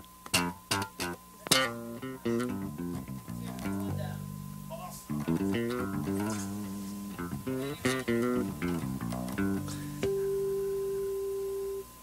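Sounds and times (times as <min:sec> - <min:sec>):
rhythm guitar strums: 0:00.2 - 0:11.8
plucked electric bass guitar: 0:00.3 - 0:10.9.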